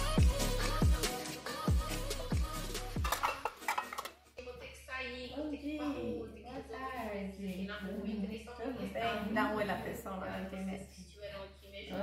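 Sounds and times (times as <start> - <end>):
metal pan clattering against dishes: 3.0 - 4.2.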